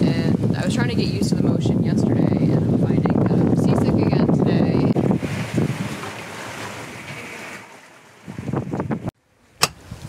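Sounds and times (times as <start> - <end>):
water rushing past hull: 0.0 - 10.0
wind buffeting microphone: 0.0 - 10.0.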